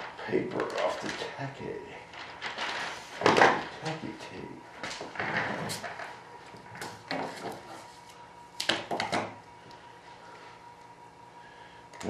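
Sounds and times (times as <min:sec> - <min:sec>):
plastic film rustling: 0:00.0 - 0:08.2.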